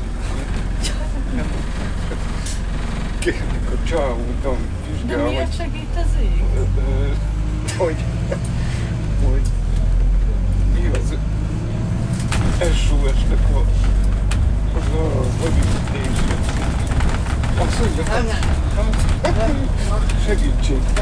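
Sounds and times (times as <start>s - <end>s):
bus engine rumbling: 0.0s - 21.0s
passengers talking: 0.0s - 21.0s.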